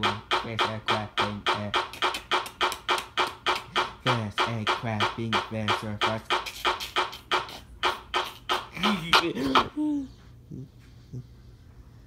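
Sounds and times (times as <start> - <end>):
sharp percussive beats: 0.0 - 9.7.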